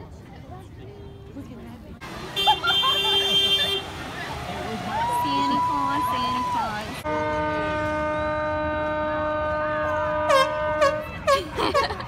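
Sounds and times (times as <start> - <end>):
boat horn blast: 7.0 - 11.4.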